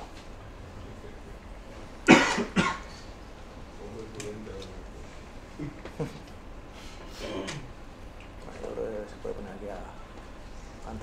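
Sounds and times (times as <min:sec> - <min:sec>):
person coughing: 0:02.1 - 0:03.0.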